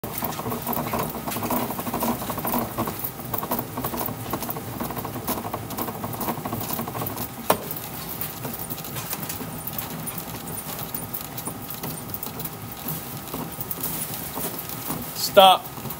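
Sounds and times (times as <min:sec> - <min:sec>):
bat rolling machine crackling: 0:00.0 - 0:15.9.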